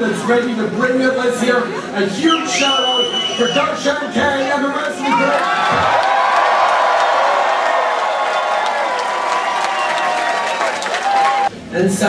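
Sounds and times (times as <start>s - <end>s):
large crowd cheering and applauding: 4.6s - 11.5s
crowd shouts and whoops: 4.8s - 11.5s.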